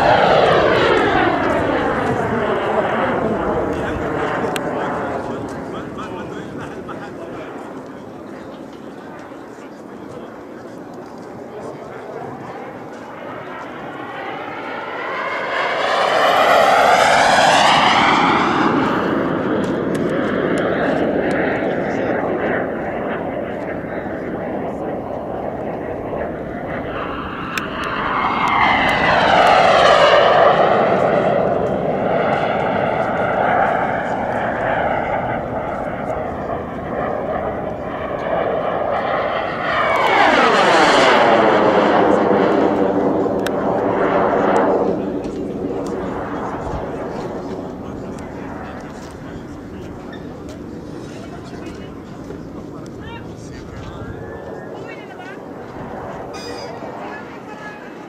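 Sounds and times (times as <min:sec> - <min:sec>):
model jet turbine whine passing: 0:00.0 - 0:58.0.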